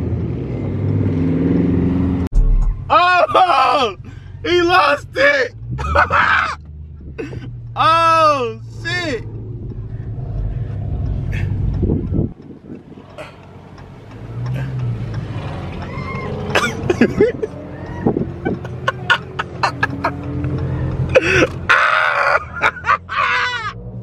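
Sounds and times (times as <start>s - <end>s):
car engine low rumble: 0.0s - 24.0s
voices calling out: 2.9s - 6.8s, 7.6s - 23.9s.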